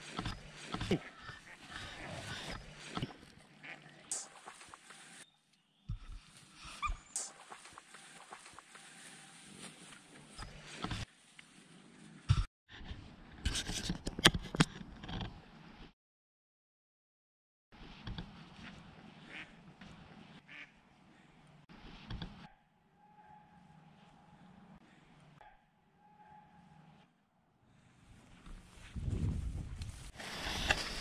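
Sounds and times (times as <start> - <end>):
duck quacking: 3.6 - 3.9, 18.6 - 19.6, 20.5 - 20.8.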